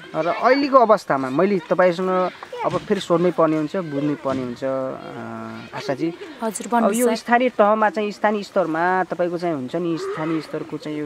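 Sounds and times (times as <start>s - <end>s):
woman talking: 6.4s - 7.3s.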